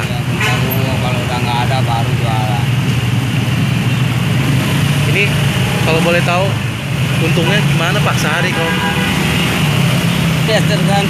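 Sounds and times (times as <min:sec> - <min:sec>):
motorcycle and minibus engines: 0:00.0 - 0:11.0.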